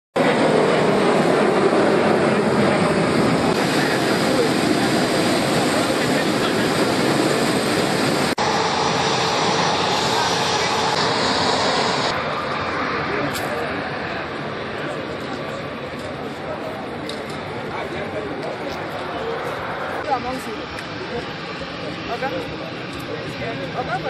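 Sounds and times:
jet engine noise: 0:00.2 - 0:24.0.

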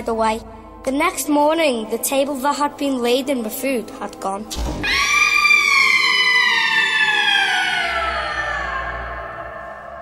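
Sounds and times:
low background music: 0:00.0 - 0:10.0
long high scream sliding down: 0:04.8 - 0:10.0.

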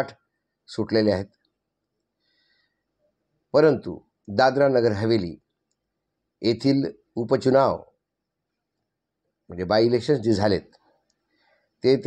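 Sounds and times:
man speaking: 0:00.0 - 0:01.3, 0:03.6 - 0:05.4, 0:06.4 - 0:07.9, 0:09.5 - 0:10.8.

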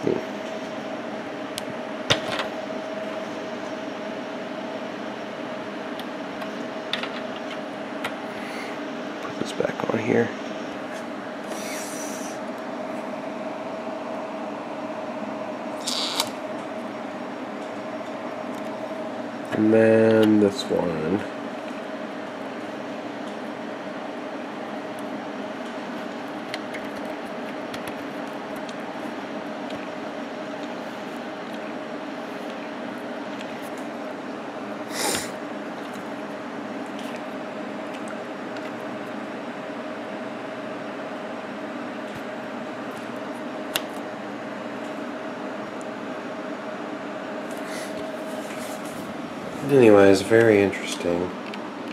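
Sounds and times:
steady hum: 0:00.0 - 0:51.9.

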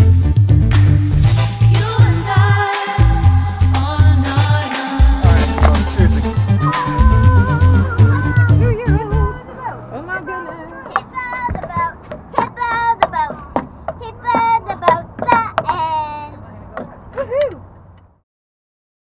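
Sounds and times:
music with steady beat: 0:00.0 - 0:09.3
child's high-pitched voice: 0:06.6 - 0:09.4, 0:10.6 - 0:16.4.

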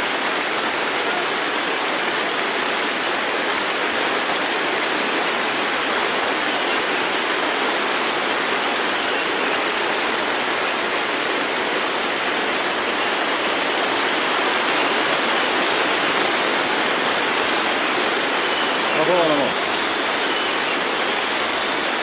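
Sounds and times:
steady rushing noise: 0:00.0 - 0:22.0.

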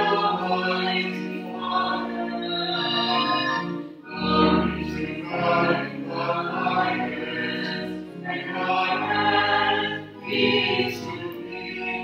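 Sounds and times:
choir singing held notes: 0:00.0 - 0:12.0.

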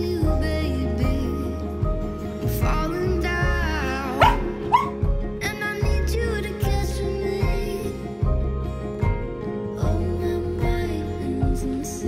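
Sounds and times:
background music: 0:00.0 - 0:12.0
dog barking: 0:04.2 - 0:05.0.

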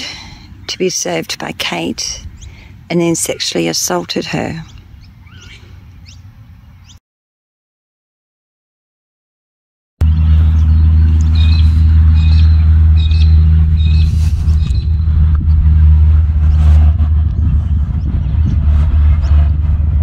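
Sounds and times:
bird chirps: 0:04.6 - 0:07.0, 0:10.0 - 0:15.6
low engine hum: 0:10.0 - 0:20.0.

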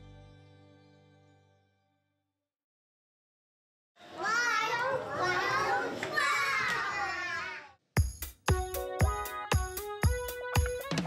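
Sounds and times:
young children's voices: 0:04.1 - 0:07.8.

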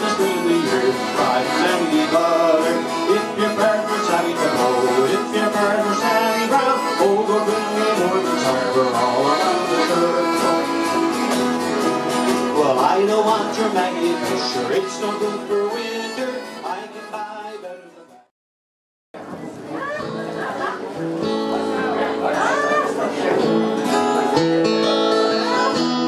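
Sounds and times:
piano accordion playing: 0:00.0 - 0:17.4
harmonica: 0:00.0 - 0:17.7
acoustic guitars strumming: 0:00.0 - 0:18.3, 0:20.0 - 0:26.0.

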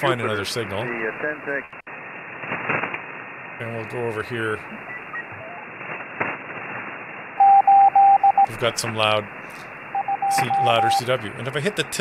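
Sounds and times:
receiver band noise hiss: 0:00.0 - 0:12.0
morse code beep tone: 0:07.4 - 0:08.5, 0:09.9 - 0:11.1.

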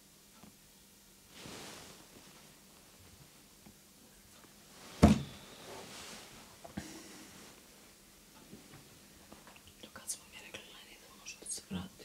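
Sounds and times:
woman whispering: 0:09.7 - 0:12.0.

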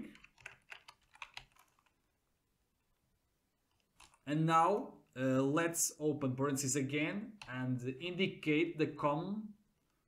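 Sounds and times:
keyboard typing: 0:00.0 - 0:02.0, 0:03.6 - 0:04.2.

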